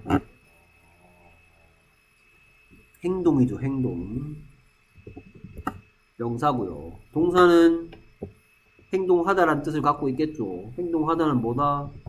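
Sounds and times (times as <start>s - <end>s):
faint low murmur: 0.0s - 8.2s.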